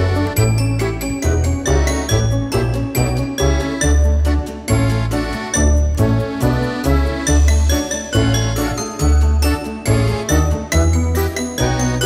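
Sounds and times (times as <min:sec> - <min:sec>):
background music with chiming notes: 0:00.0 - 0:12.0.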